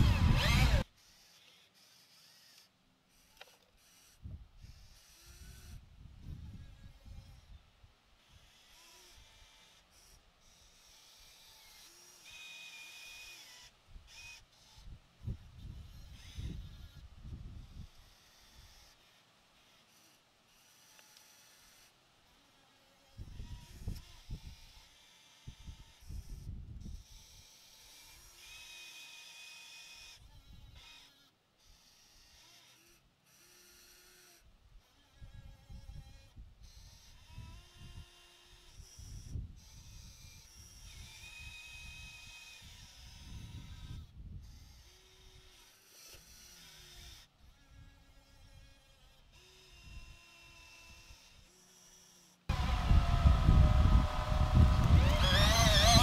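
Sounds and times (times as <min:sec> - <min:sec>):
small electric motors whining: 0:00.0 - 0:56.0.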